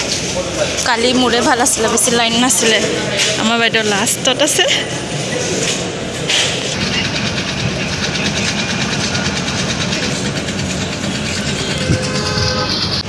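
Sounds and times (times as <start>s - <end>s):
road traffic rumble: 0.0s - 13.0s
vehicle horn: 11.1s - 13.0s.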